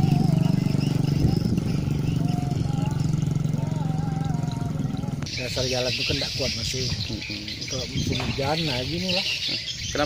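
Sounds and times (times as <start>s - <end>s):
diesel truck engine idling: 0.0s - 9.0s.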